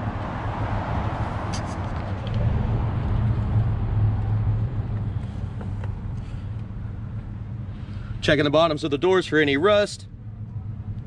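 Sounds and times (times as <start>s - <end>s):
motor traffic rumble: 0.0s - 11.0s.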